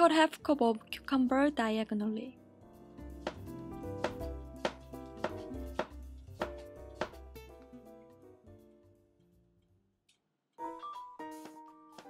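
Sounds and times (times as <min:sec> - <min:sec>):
background music: 0:00.0 - 0:09.6, 0:10.6 - 0:12.0
knife slicing on cutting board: 0:03.2 - 0:07.3.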